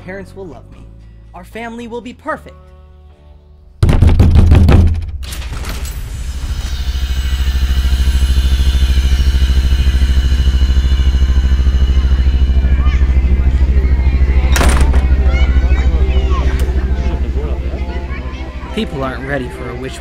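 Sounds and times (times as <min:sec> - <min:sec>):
low rumbling drone with flutter: 0:06.2 - 0:20.0.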